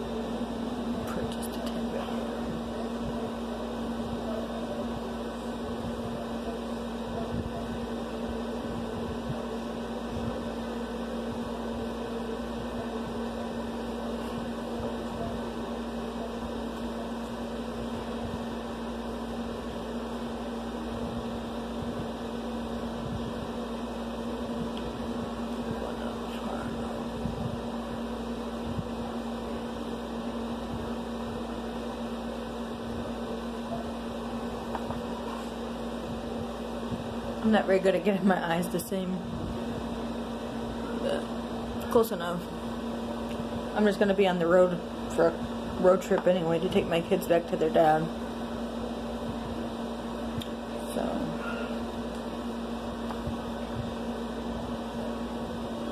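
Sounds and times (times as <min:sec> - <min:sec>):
machine hum: 0:00.0 - 0:55.9.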